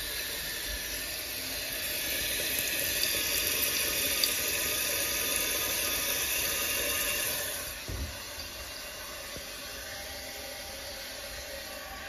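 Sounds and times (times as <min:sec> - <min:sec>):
water refilling toilet tank: 0:00.0 - 0:12.0.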